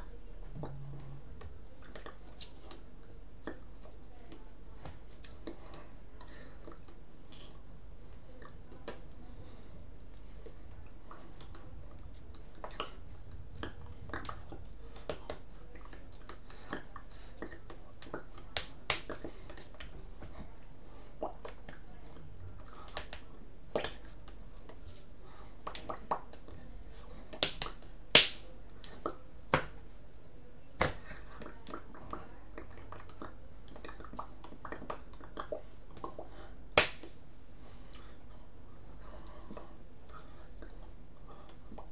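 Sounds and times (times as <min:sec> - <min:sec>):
faint clicks of hands and mouth: 0:01.4 - 0:09.2, 0:10.0 - 0:21.9, 0:22.6 - 0:25.0
hands clicking and tapping: 0:17.4 - 0:20.0, 0:27.4 - 0:29.8
sharp hand slaps: 0:27.4 - 0:28.4, 0:36.8 - 0:37.1.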